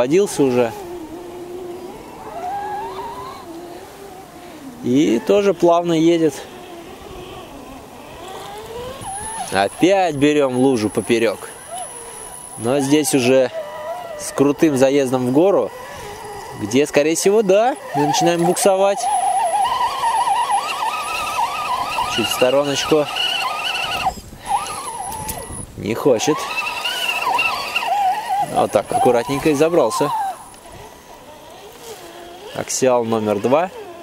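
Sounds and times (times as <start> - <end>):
rc car motor whining: 0.0 - 34.0.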